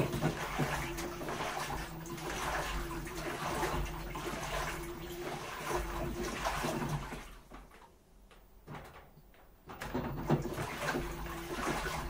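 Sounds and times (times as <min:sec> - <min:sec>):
laundry sloshing in washing machine: 0:00.0 - 0:08.0, 0:08.7 - 0:12.0.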